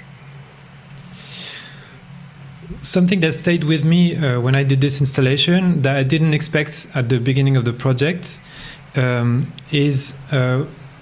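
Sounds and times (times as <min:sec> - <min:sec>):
low microphone hum: 0:00.0 - 0:11.0
soft breathy hiss: 0:01.0 - 0:02.1, 0:08.4 - 0:09.0.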